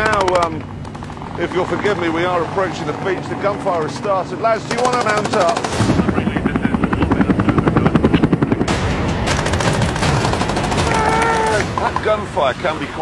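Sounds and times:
rapid machine-gun fire: 0.0s - 1.9s, 4.0s - 6.8s, 8.6s - 11.8s.

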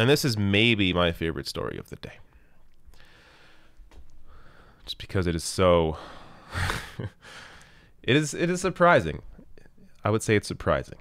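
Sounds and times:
man breathing softly: 2.3s - 4.9s, 5.9s - 8.0s.

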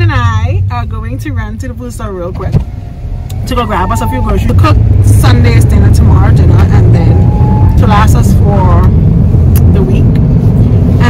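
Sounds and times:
car cabin road and engine drone: 0.0s - 11.0s.

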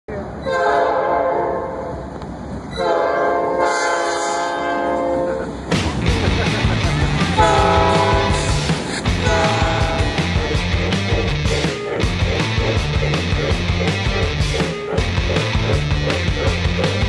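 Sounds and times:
train air horn blasts: 0.4s - 2.0s, 2.7s - 5.5s, 7.4s - 10.4s
loud intro music: 5.5s - 17.0s.

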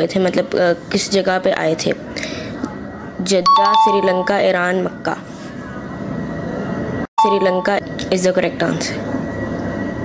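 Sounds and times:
two-note doorbell chime: 3.5s - 4.4s, 7.2s - 7.7s.

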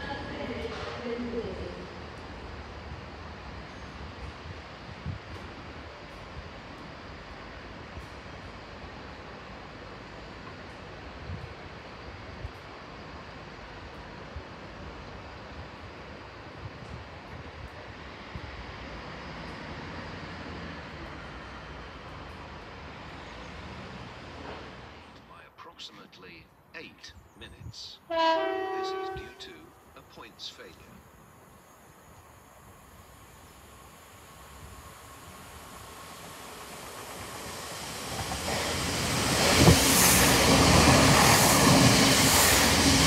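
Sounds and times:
diesel train running: 27.6s - 43.0s.

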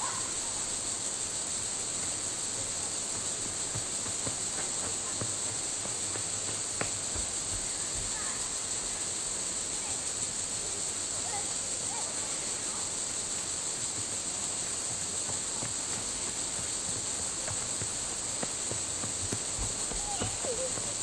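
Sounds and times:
insect chorus droning: 0.0s - 21.0s.

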